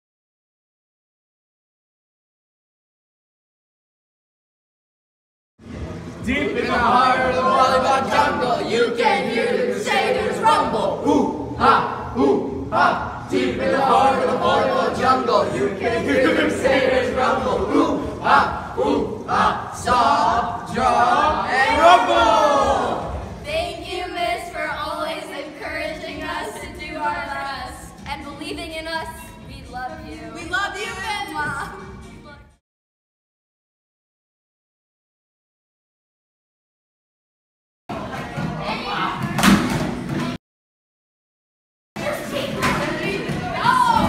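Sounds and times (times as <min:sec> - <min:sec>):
classroom noise: 0:06.2 - 0:26.6, 0:42.0 - 0:44.0
boys chanting in unison: 0:06.3 - 0:23.2.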